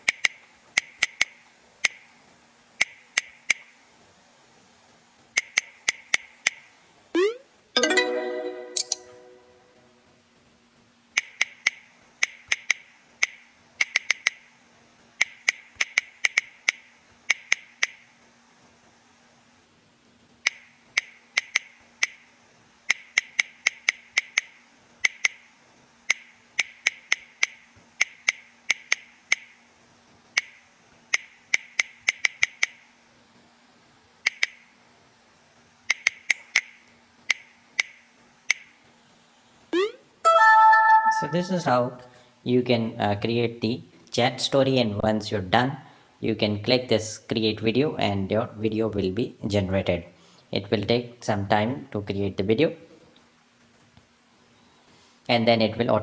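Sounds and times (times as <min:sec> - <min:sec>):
faint steady hum: 0:00.0 - 0:56.0.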